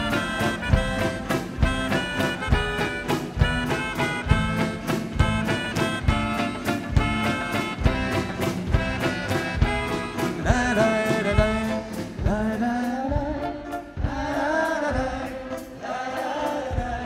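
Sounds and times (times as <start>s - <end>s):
live band playing upbeat song: 0.0s - 17.0s.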